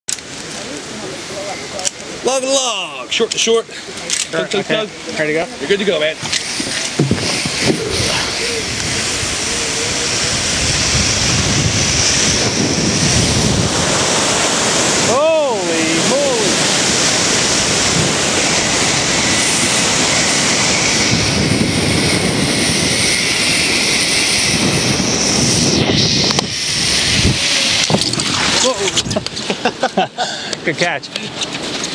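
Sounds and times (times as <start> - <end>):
trolley running along steel cable: 4.6 - 29.2
wind rushing over microphone: 5.6 - 29.8
person whooping: 7.8 - 8.8.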